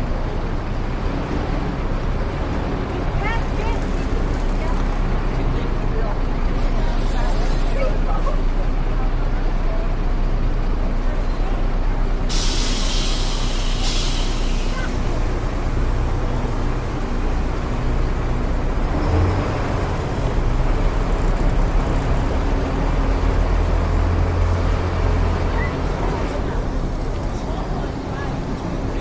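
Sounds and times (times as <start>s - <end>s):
bus engine running: 0.0s - 29.0s
air brake hiss: 12.3s - 14.9s.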